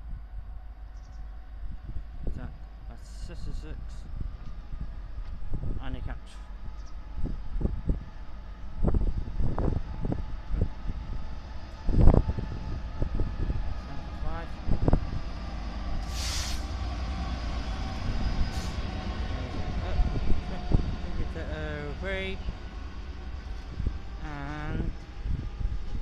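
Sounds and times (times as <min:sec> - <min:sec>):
diesel locomotive rumble: 0:00.0 - 0:26.0
short hiss: 0:16.0 - 0:16.7.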